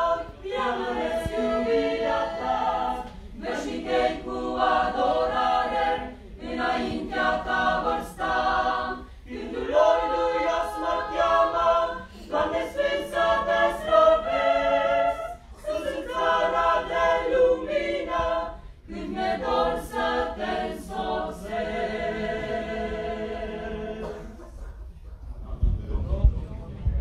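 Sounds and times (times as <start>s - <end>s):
choir singing a cappella: 0.0s - 24.7s.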